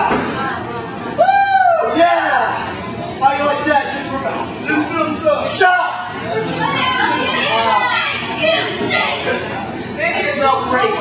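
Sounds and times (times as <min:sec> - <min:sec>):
children's voices: 0:06.2 - 0:11.0.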